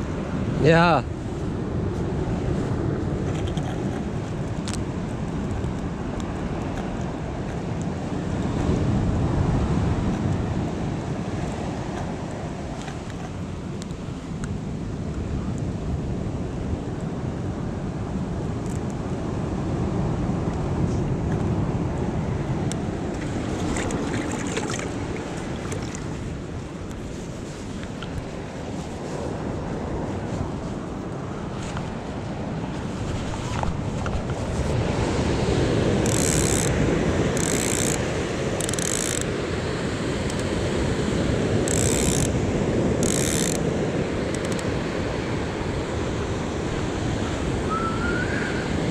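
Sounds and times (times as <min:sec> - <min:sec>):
wind on microphone: 0:00.0 - 0:48.9
surf breaking on shore: 0:19.1 - 0:38.6, 0:43.6 - 0:48.9.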